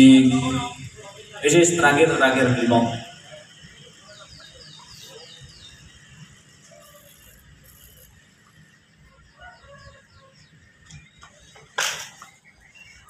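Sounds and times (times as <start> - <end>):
high falling bird chirps: 2.7 - 13.0.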